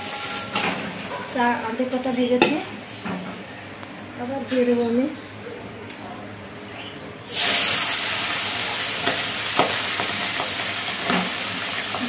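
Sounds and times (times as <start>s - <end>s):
fish sizzling in hot oil: 7.3s - 12.0s.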